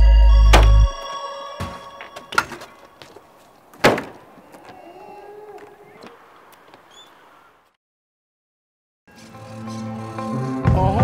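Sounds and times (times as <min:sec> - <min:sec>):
bike landing on concrete: 0:01.6 - 0:04.8.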